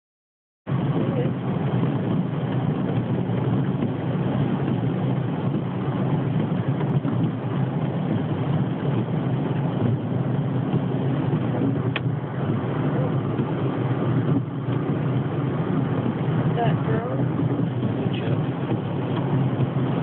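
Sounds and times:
rain on car: 0:00.7 - 0:20.0
tyres on wet road: 0:00.7 - 0:20.0.

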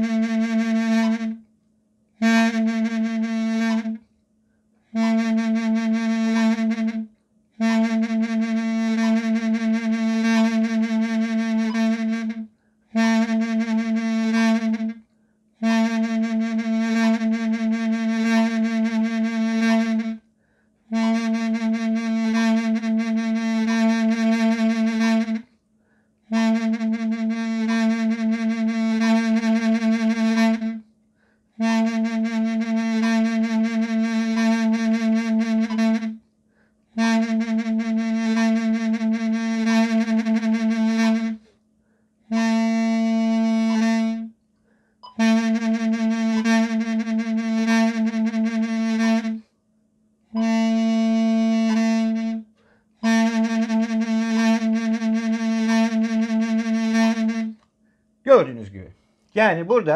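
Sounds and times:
double-reed pipe repeated note: 0:00.0 - 0:01.4, 0:02.2 - 0:04.0, 0:04.9 - 0:15.0, 0:20.9 - 0:25.4, 0:31.6 - 0:36.2, 0:42.3 - 0:44.3, 0:45.0 - 0:49.4, 0:50.3 - 0:57.6
breath pauses: 0:12.5 - 0:12.9, 0:15.1 - 0:15.5, 0:20.3 - 0:20.8, 0:25.7 - 0:26.2, 0:31.1 - 0:31.6, 0:36.4 - 0:36.9, 0:41.4 - 0:42.2, 0:44.6 - 0:45.0, 0:52.5 - 0:53.0, 0:57.8 - 0:58.2, 0:58.9 - 0:59.4.

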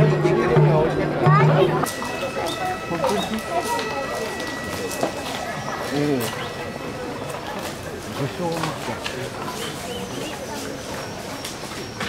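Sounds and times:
crowd chatter: 0:00.0 - 0:12.0
faint steady high tone: 0:01.7 - 0:08.8
footsteps on paved path: 0:01.8 - 0:12.0.

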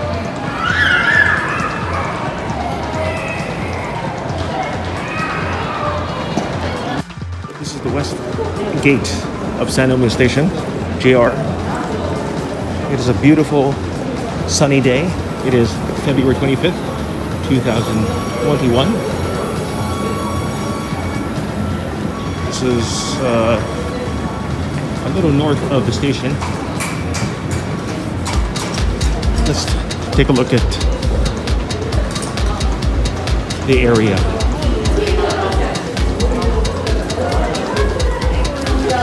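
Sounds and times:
music with steady beat and melody: 0:27.1 - 0:39.0.

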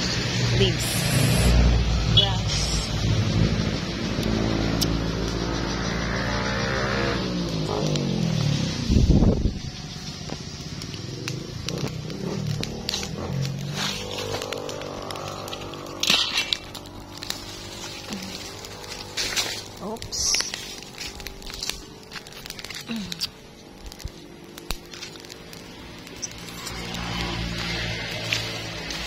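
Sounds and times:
leaf fire crackling and popping: 0:00.0 - 0:29.0
vehicle passing on road: 0:00.0 - 0:29.0.

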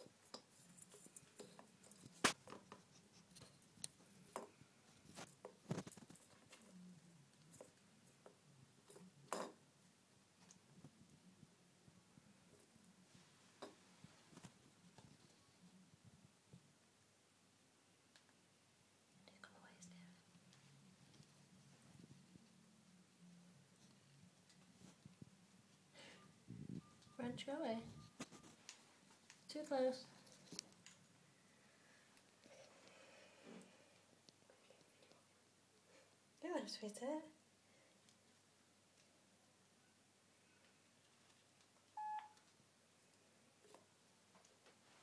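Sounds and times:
person whispering: 0:19.2 - 0:20.3
short electronic beep: 0:42.0 - 0:42.4.

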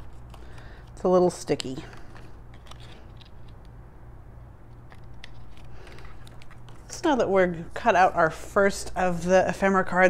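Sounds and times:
paper and cardstock handling: 0:00.0 - 0:03.8, 0:04.7 - 0:07.2
steady low hum: 0:00.0 - 0:10.0.

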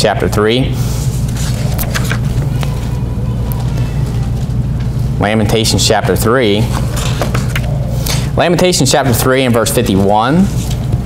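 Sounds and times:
low room hum: 0:00.0 - 0:11.0
paper rustle: 0:01.2 - 0:03.0.

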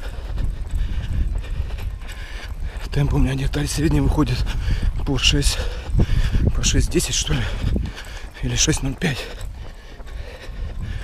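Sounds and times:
wind on microphone: 0:00.0 - 0:11.0.

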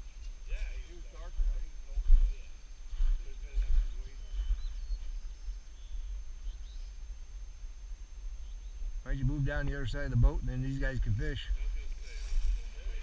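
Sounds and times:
faint distant voices: 0:00.0 - 0:13.0.

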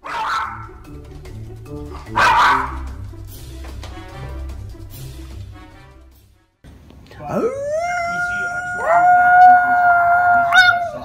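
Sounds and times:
dog howling: 0:07.3 - 0:11.0.

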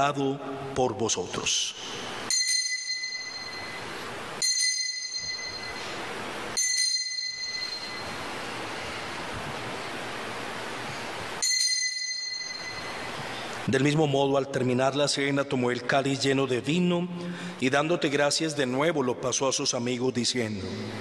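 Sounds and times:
altar bell ringing: 0:01.9 - 0:09.0, 0:11.4 - 0:13.7.

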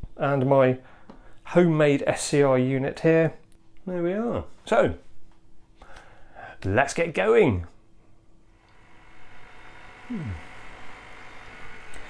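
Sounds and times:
low electrical hum: 0:00.0 - 0:12.0
thin high whine: 0:08.5 - 0:12.0.

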